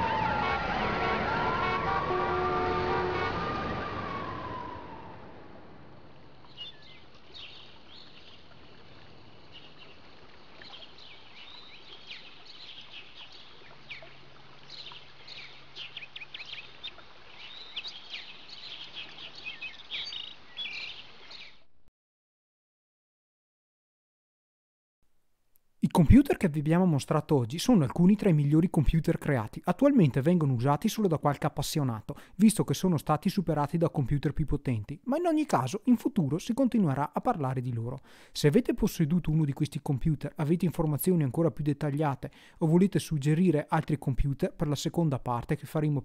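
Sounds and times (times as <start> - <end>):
wailing siren-like tone: 0.0 - 6.1.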